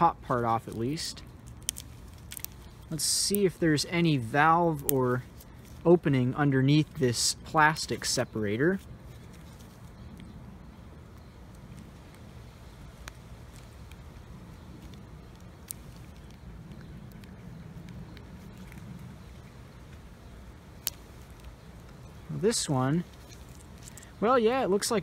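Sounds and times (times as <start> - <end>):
low background rumble: 0.0 - 25.0.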